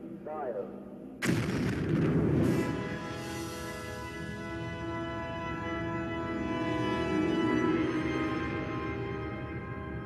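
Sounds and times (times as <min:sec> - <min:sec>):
explosion boom with low rumble: 0:01.2 - 0:03.2
soundtrack music: 0:02.0 - 0:10.0.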